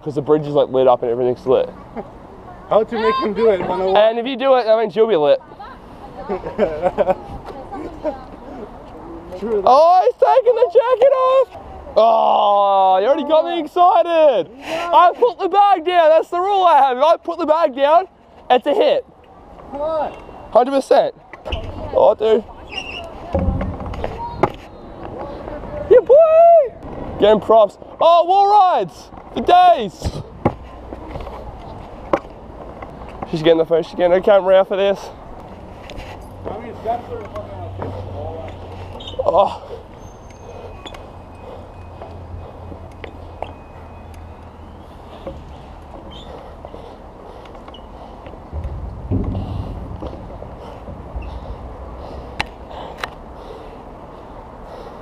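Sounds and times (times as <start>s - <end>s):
scooter wheels rolling on concrete: 26.8s - 54.9s
low steady rumble: 48.5s - 52.7s.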